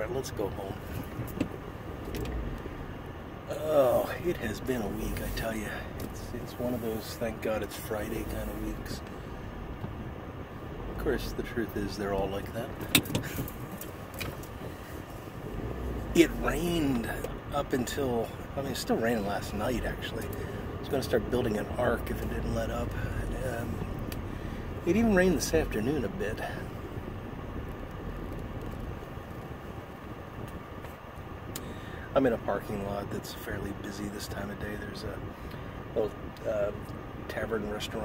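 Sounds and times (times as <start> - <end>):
car engine and tyres rumbling: 0.0 - 38.0.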